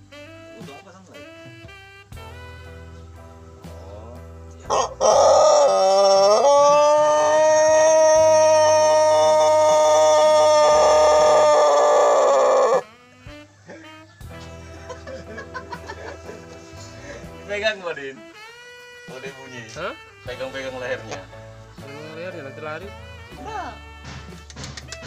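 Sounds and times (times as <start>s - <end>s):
rooster crowing: 4.7s - 12.9s.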